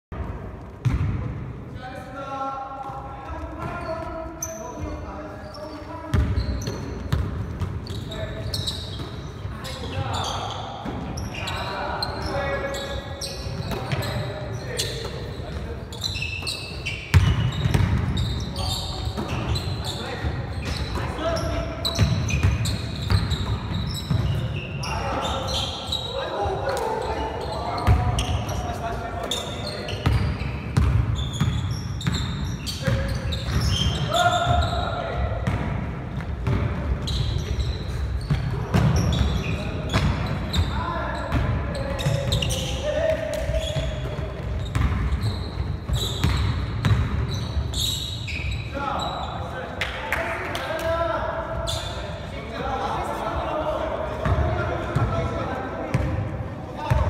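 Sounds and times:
sneaker squeaks: 2.8 - 49.6, 51.4 - 56.2
basketball bouncing on wooden floor: 17.1 - 18.2, 44.1 - 45.1
players calling out: 31.2 - 35.4.

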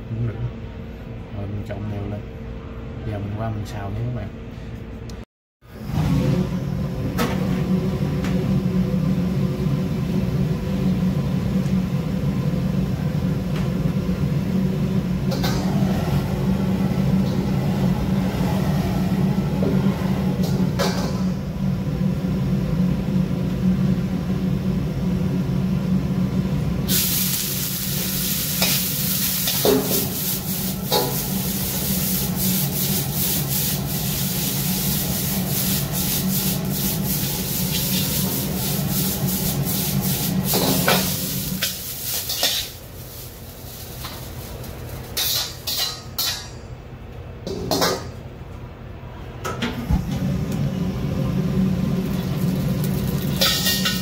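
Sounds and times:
gas burner rumbling: 3.1 - 54.0
food sizzling in hot oil: 26.9 - 45.9, 52.0 - 54.0
metal spatula scraping wok: 40.5 - 46.4.

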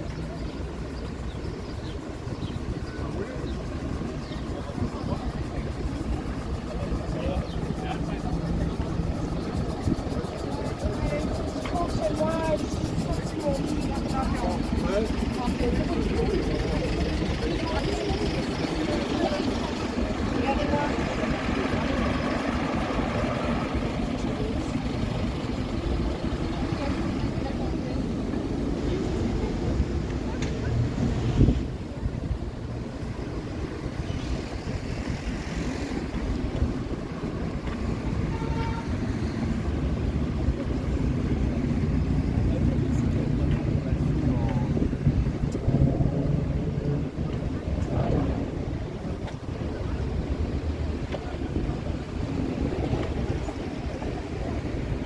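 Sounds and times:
low engine hum: 0.0 - 55.0
passers-by talking: 0.0 - 55.0
traffic rumble: 0.0 - 55.0.

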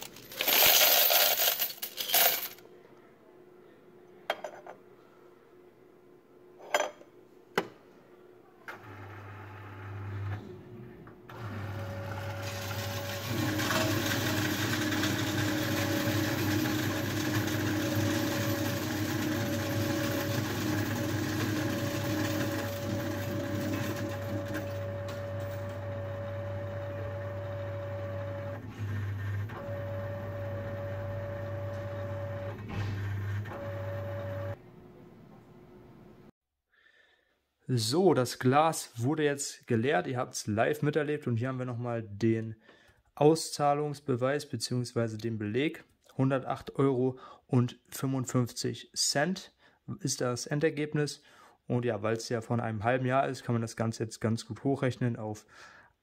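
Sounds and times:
coin counting machine motor humming: 0.0 - 2.6, 11.3 - 34.6
coins clattering into steel tray: 0.0 - 2.6.

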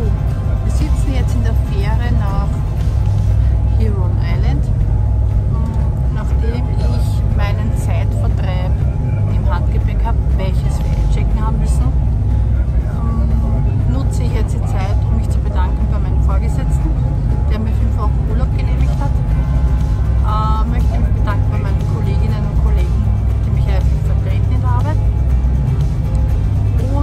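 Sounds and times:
ferry engines droning: 0.0 - 27.0.

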